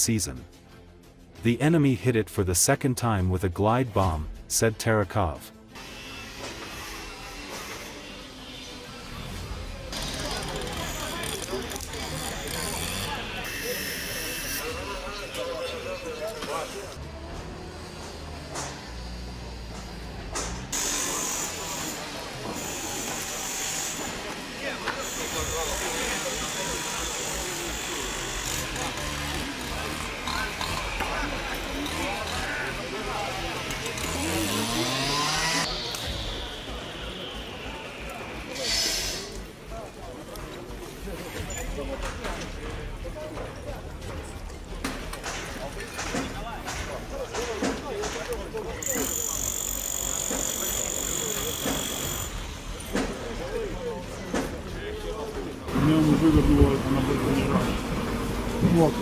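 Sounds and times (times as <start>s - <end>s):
chatter of voices: 7.4s - 59.0s
low machinery drone: 25.2s - 39.7s
motor rising in pitch: 33.1s - 37.9s.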